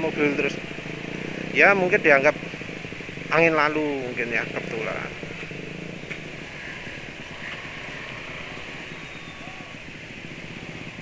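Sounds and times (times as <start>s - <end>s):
motorbike traffic: 0.0s - 11.0s
scooter engine hum: 0.0s - 11.0s.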